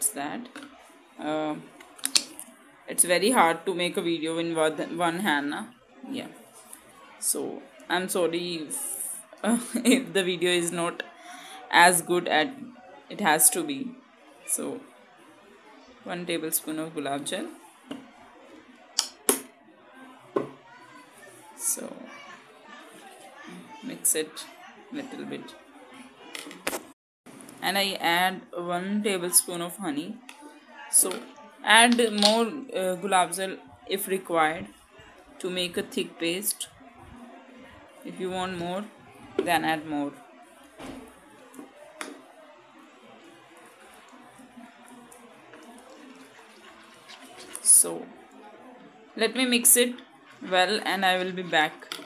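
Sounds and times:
woman speaking: 0:00.0 - 0:00.6, 0:01.2 - 0:01.7, 0:02.9 - 0:06.3, 0:07.2 - 0:13.9, 0:14.5 - 0:14.8, 0:16.1 - 0:17.5, 0:21.6 - 0:22.1, 0:23.5 - 0:25.5, 0:27.6 - 0:30.2, 0:30.9 - 0:34.7, 0:35.4 - 0:36.7, 0:38.1 - 0:40.2, 0:47.5 - 0:48.1, 0:49.2 - 0:51.8
background voices chattering: 0:00.0 - 0:52.0
spoon scraping thick mixture in bowl: 0:43.6 - 0:47.7.

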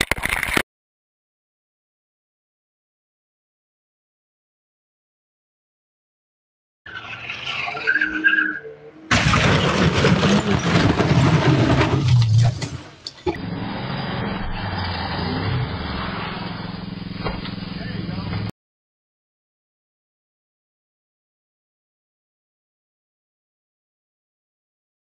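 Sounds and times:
car noise with tyres skidding: 0:06.9 - 0:18.0.

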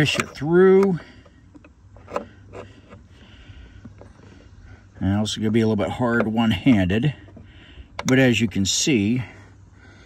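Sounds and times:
low steady hum: 0:00.0 - 0:10.0
light knocks and scrapes: 0:01.5 - 0:03.2.

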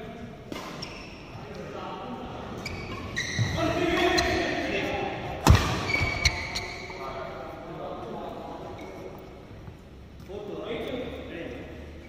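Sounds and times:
shoes squeaking on court: 0:00.5 - 0:01.7, 0:02.5 - 0:07.1, 0:08.6 - 0:10.3
racket hitting shuttlecock: 0:05.4 - 0:06.6.

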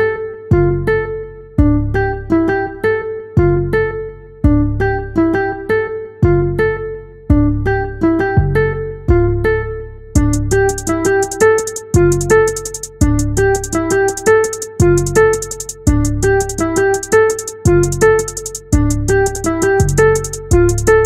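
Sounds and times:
plucked guitar-like melody: 0:00.0 - 0:21.0
deep bass hits: 0:01.6 - 0:02.0, 0:04.4 - 0:04.8, 0:08.4 - 0:09.4, 0:10.2 - 0:11.1, 0:12.0 - 0:13.8, 0:14.8 - 0:16.8, 0:17.7 - 0:21.0.

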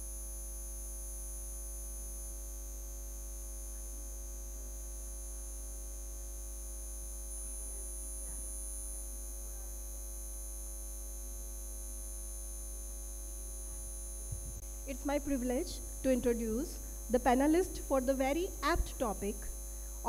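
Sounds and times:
electrical mains hum: 0:07.1 - 0:20.0.

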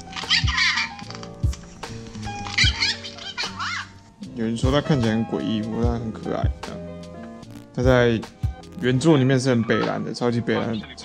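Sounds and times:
toy baby voice giggling: 0:02.6 - 0:03.9.

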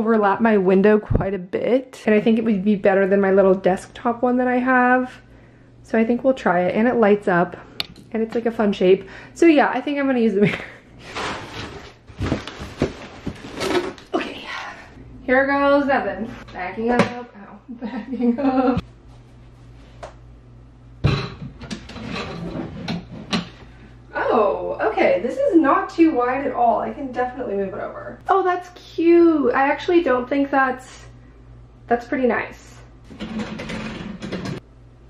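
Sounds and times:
low room hum: 0:00.0 - 0:35.0
furniture scraping across floor: 0:11.0 - 0:14.0, 0:21.9 - 0:23.4.

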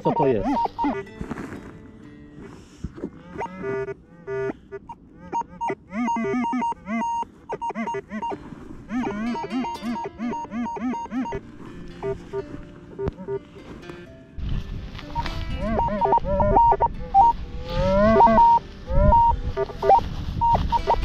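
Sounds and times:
metal detector beeps: 0:00.0 - 0:01.0, 0:04.9 - 0:11.4, 0:12.0 - 0:12.4, 0:15.1 - 0:21.0.

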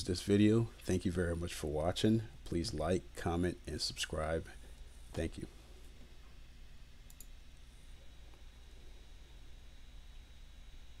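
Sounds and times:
steady hum: 0:00.0 - 0:11.0
computer mouse clicking: 0:07.1 - 0:07.3.

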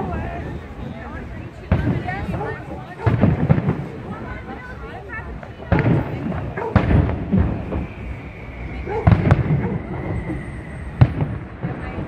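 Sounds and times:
firework shells bursting: 0:05.4 - 0:12.0.

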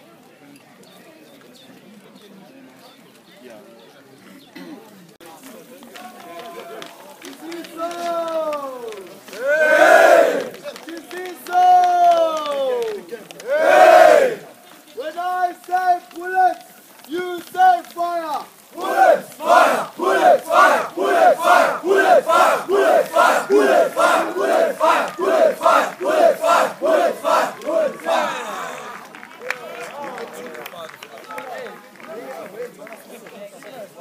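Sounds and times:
rhythmic shouts: 0:07.5 - 0:10.6, 0:11.2 - 0:14.5, 0:17.1 - 0:29.0
boys chanting in unison: 0:13.5 - 0:14.4, 0:18.8 - 0:28.7.

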